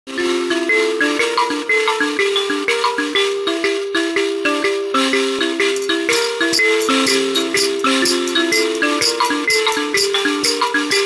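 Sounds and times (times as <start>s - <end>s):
thumb piano plucked notes: 0.7s - 11.0s.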